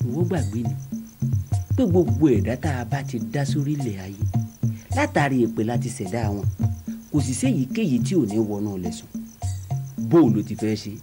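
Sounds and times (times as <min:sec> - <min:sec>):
people speaking: 0:00.0 - 0:00.8, 0:01.7 - 0:04.3, 0:04.9 - 0:06.5, 0:07.1 - 0:09.1, 0:10.0 - 0:11.0
high rapid chirping: 0:00.0 - 0:11.0.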